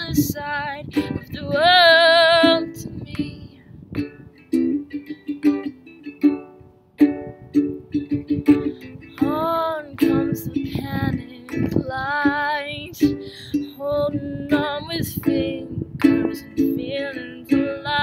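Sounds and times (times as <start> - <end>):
ukulele strumming: 0.0 - 18.0.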